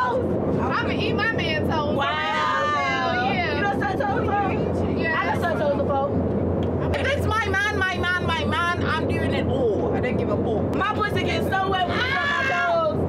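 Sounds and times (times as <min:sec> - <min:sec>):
women talking: 0:00.0 - 0:06.2, 0:10.8 - 0:13.0
jet cabin drone: 0:00.0 - 0:13.0.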